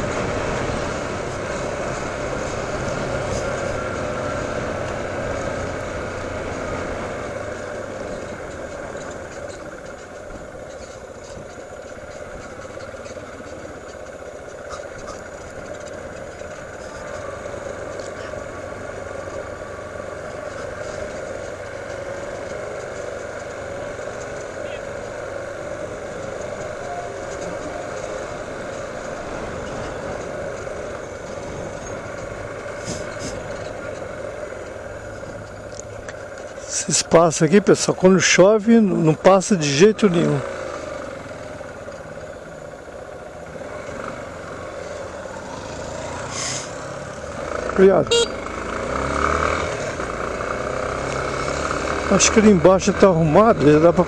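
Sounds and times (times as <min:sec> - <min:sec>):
motorcycle engine running: 0:00.0 - 0:36.7, 0:40.0 - 0:54.0
road and wind noise: 0:00.0 - 0:54.0.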